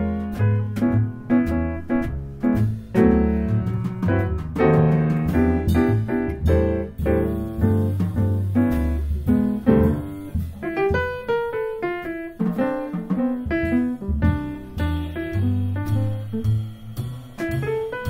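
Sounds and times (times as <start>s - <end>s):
plucked bass notes: 0.0s - 11.5s, 12.1s - 18.0s
jazz piano: 0.0s - 18.0s.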